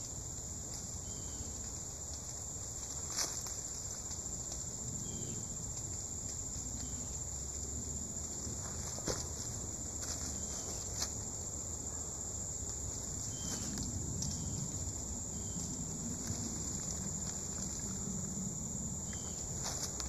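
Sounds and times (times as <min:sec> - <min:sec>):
insects chirring: 0:00.0 - 0:20.0.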